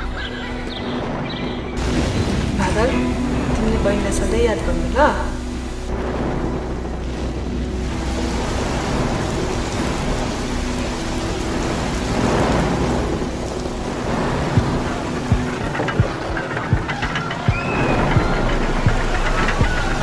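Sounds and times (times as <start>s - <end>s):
steady rushing hiss: 0.0s - 20.0s.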